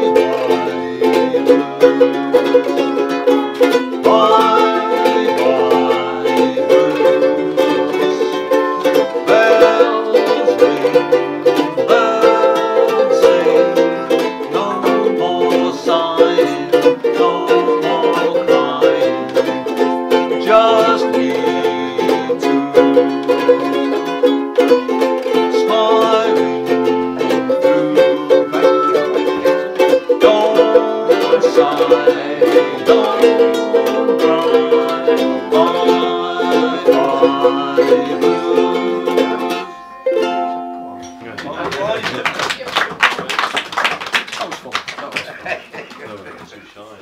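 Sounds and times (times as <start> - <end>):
man singing: 0.0 - 40.0
ukuleles strummed: 0.0 - 43.6.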